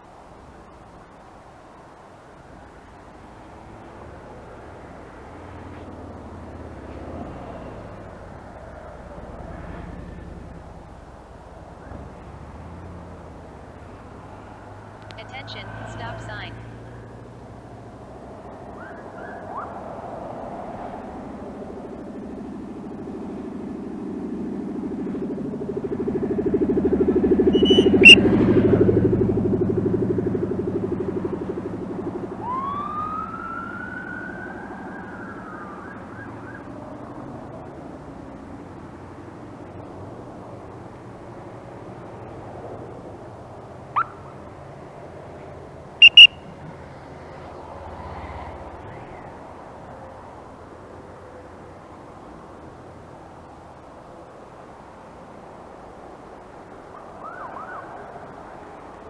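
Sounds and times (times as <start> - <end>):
vehicle engine passing: 2.4 - 59.0
police siren: 18.7 - 20.4, 24.2 - 37.7, 46.0 - 46.5, 56.9 - 58.6
short siren chirps: 27.5 - 28.3, 46.0 - 46.5.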